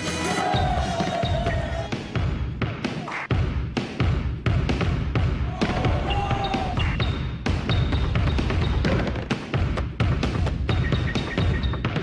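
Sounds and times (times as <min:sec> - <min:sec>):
background music with low beat: 0:00.0 - 0:12.0
basketball bouncing on court floor: 0:02.2 - 0:12.0.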